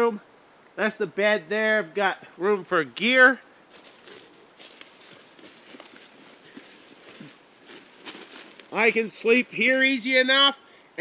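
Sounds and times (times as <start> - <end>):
rustling on dry leaves: 3.7 - 10.1.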